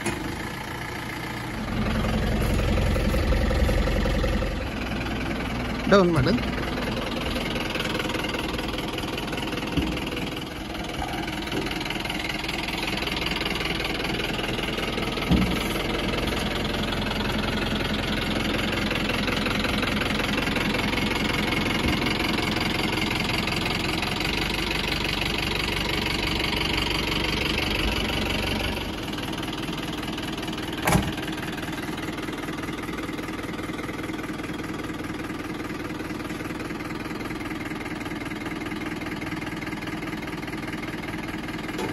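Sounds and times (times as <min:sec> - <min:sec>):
pickup truck engine running: 0:00.0 - 0:41.9.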